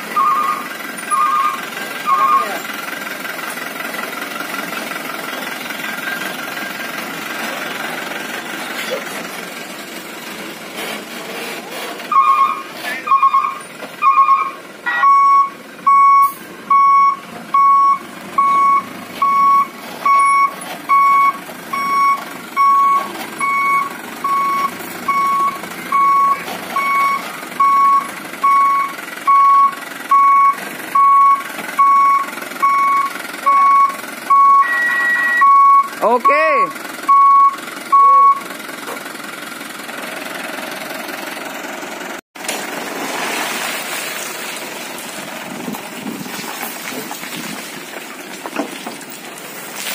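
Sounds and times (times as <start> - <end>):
truck reversing alarm beeping: 0.0 - 4.2, 12.0 - 38.6.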